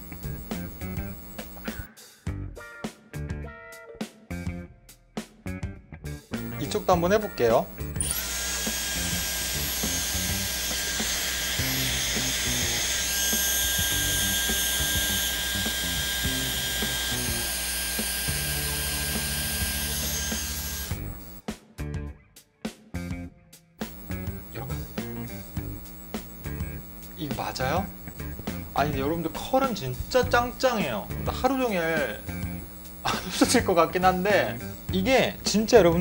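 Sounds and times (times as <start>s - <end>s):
hair styler blowing hot air: 0.0s - 1.9s, 6.5s - 21.4s, 23.9s - 30.2s.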